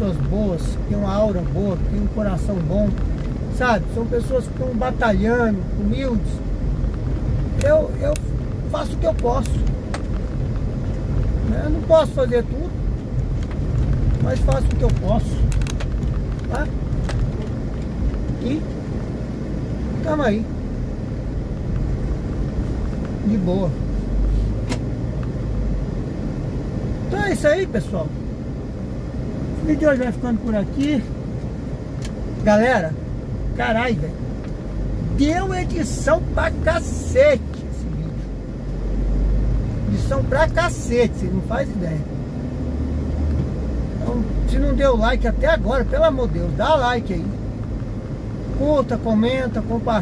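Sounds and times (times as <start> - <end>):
car engine and road rumble: 0.0 - 50.0.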